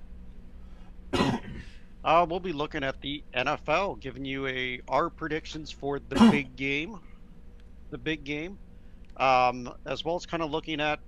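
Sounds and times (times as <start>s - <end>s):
man clearing his throat: 1.2s - 1.8s, 6.1s - 6.6s.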